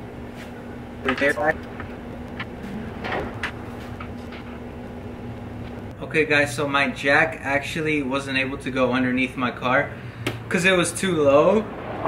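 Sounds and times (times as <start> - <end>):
low mechanical hum: 0.0 - 12.0.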